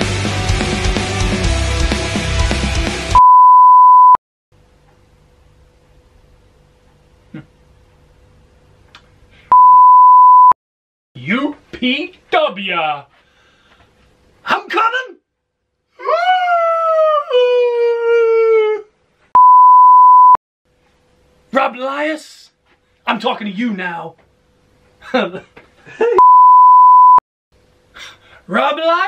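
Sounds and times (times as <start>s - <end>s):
music: 0.0s - 3.2s
steady test-tone beep: 3.2s - 4.2s, 9.5s - 10.6s, 19.4s - 20.4s, 26.2s - 27.2s
man's high falsetto howl: 16.0s - 18.9s.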